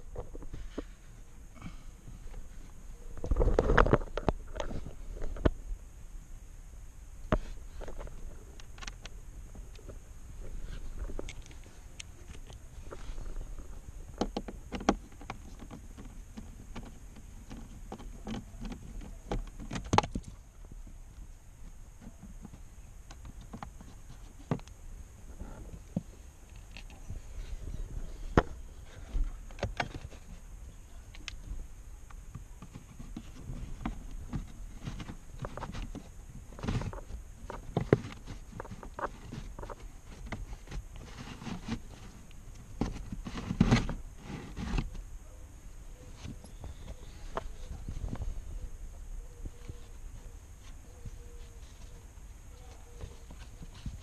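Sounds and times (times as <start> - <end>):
filter scraping and rustling: 0.0 - 5.6, 7.2 - 20.4, 21.6 - 45.1, 45.9 - 54.0
hand rubbing plastic parts: 7.2 - 54.0.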